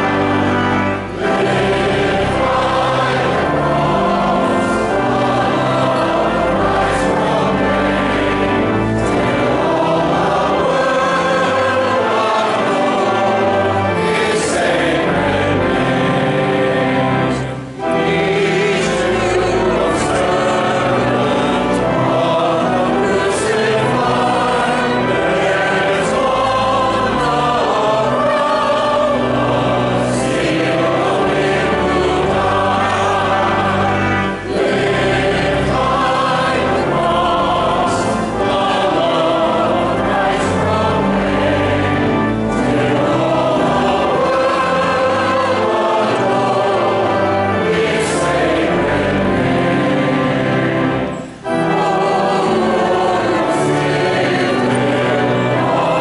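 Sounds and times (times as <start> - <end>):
congregation singing a hymn: 0.0 - 56.0.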